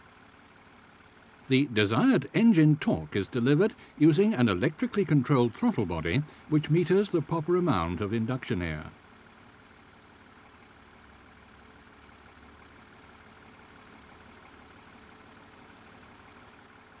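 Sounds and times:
faint engine hum: 0.0 - 17.0.

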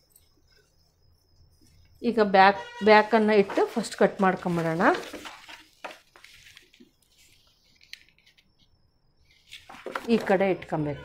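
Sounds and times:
paper rustling on cloth: 2.9 - 8.4.

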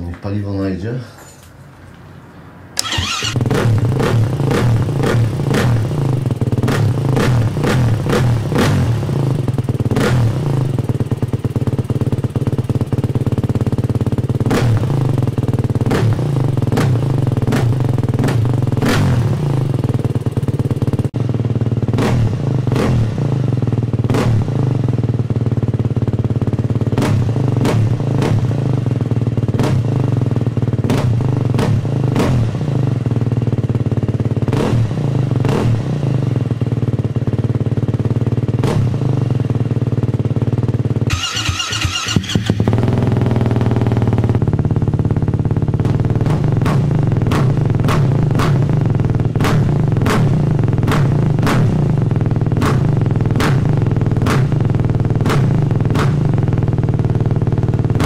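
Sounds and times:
motorcycle engine revving: 2.8 - 58.0.

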